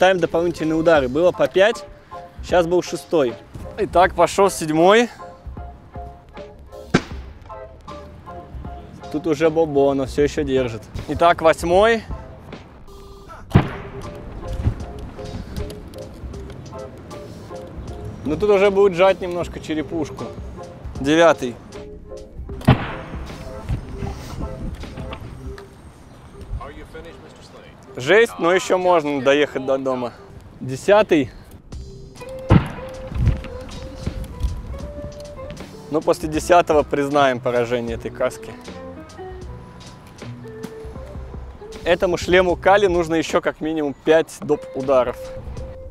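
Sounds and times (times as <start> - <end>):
background music: 0.0 - 45.9.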